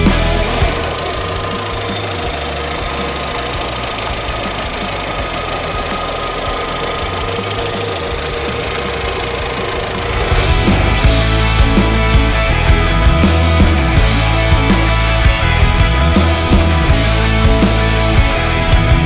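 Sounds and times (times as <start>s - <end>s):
car engine idling: 0.0s - 18.8s
rock music: 0.0s - 19.0s.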